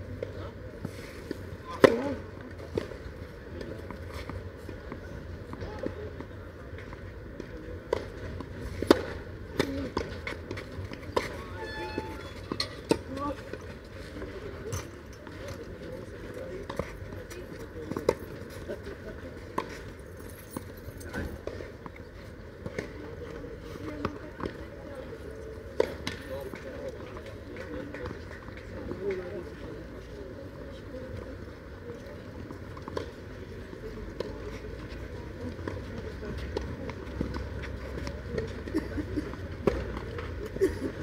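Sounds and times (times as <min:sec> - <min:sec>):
faint voices of players: 0:00.0 - 0:41.0
tennis balls struck by rackets: 0:01.3 - 0:11.5.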